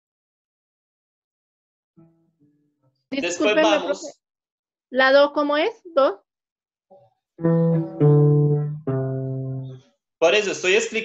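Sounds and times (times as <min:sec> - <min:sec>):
classical guitar bass notes: 0:07.4 - 0:09.8.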